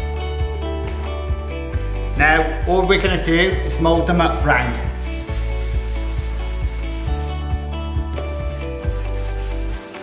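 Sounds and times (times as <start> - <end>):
background music with light beat: 0.0 - 10.0
dough rubbing on steel bench: 4.9 - 7.5, 8.8 - 10.0.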